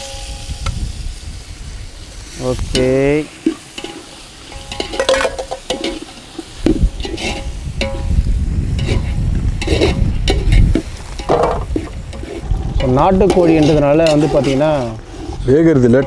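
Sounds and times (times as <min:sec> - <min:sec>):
masala sizzling: 0:00.0 - 0:16.0
metal ladle scraping pot: 0:02.7 - 0:16.0.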